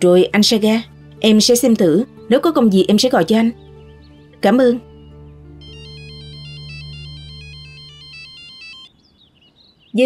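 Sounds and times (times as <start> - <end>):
soft background music chords: 0.0 - 8.9
electronic phone ringtone: 5.6 - 8.9.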